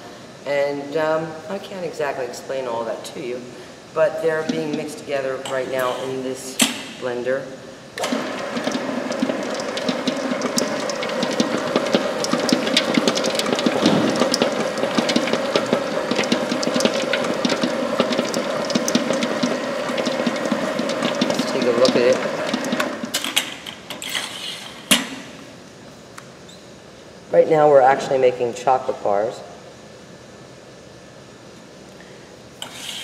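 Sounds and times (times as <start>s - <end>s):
stand mixer humming and clattering: 8.0s - 23.2s.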